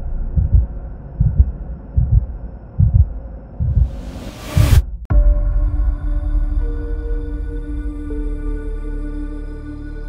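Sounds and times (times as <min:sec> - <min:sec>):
heartbeat sound effect: 0:00.2 - 0:05.4.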